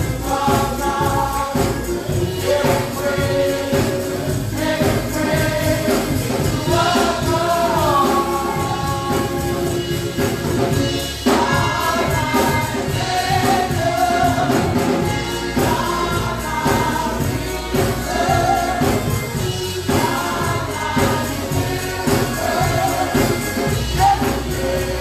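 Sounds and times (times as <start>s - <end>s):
choir singing gospel music: 0.0s - 25.0s
steady beat: 0.0s - 25.0s.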